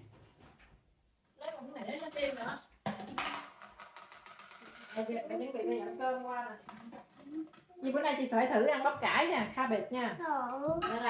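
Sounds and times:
dishes clattering: 10.8 - 11.0.

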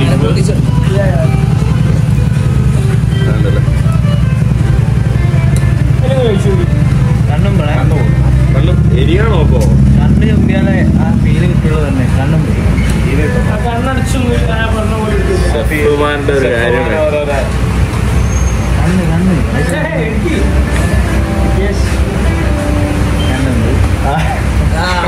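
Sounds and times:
loud steady low hum: 0.0 - 18.1, 18.8 - 25.0
voices talking indistinctly: 0.0 - 25.0.

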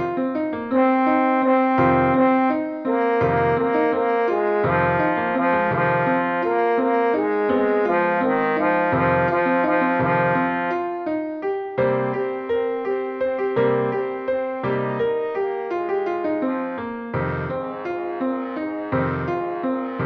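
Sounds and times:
low piano chords: 0.0 - 20.0.

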